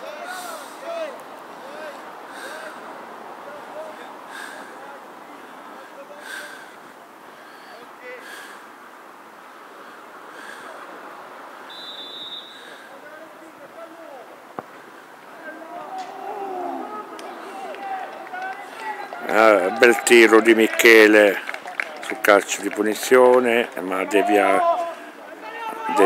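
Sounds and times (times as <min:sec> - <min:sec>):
distant players shouting: 0:11.6 - 0:26.0
faint whistle: 0:11.7 - 0:12.8.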